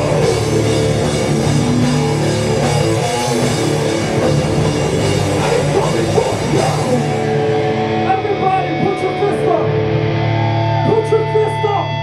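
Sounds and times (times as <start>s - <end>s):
metal band playing loud: 0.0s - 12.0s.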